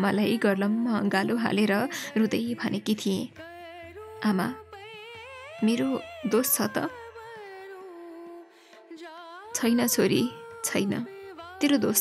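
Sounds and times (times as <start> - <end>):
woman speaking: 0.0 - 3.4, 4.2 - 4.6, 5.6 - 7.0, 9.6 - 12.0
soft background music: 0.0 - 12.0.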